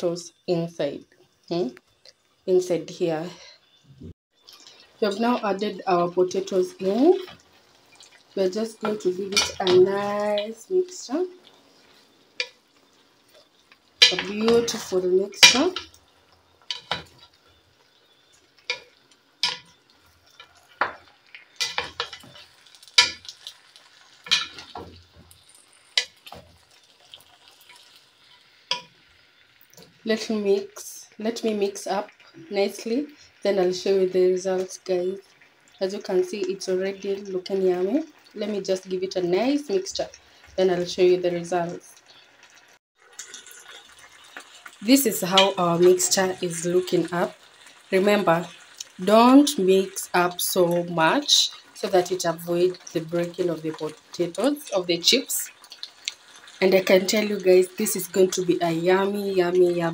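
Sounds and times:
faint sizzle: 0.0 - 59.9.

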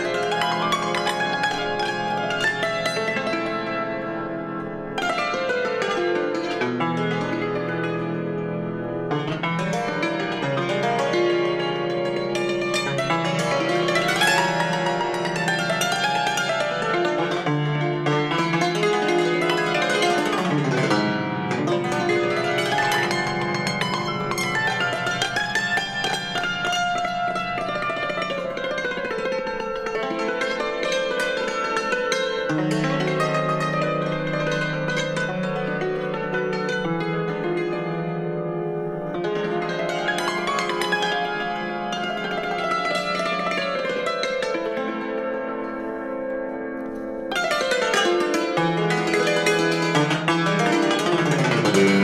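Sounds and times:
cimbalom played with hammers: 0.0 - 52.0.

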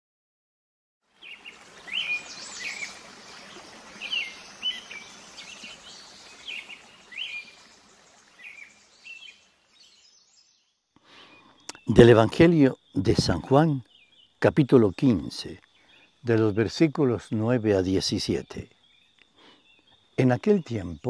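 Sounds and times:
open-air ambient hiss: 1.0 - 21.0
birds chirping: 1.2 - 21.0.

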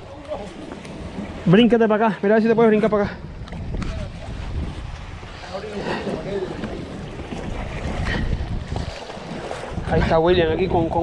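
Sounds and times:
wind rumbling on microphone: 2.6 - 11.0.

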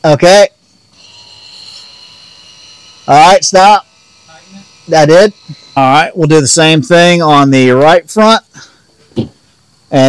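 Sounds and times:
electric pump whining: 0.9 - 8.2.

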